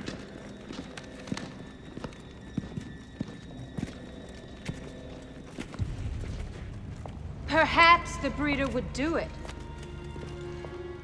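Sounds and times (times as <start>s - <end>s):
armoured footsteps on stone floor: 0.0s - 11.0s.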